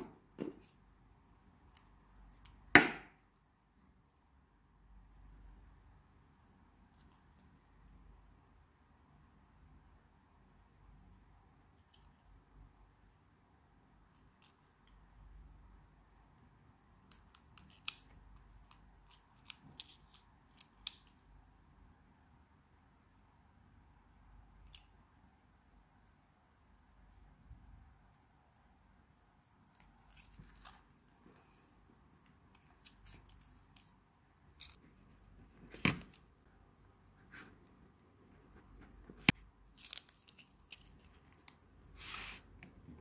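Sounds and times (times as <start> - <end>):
faint plastic pen clicks: 1.6 - 2.7, 17.0 - 21.3.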